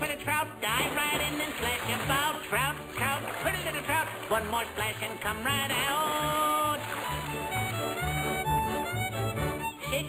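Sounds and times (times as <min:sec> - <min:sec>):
square-dance fiddle tune: 0:00.0 - 0:10.0.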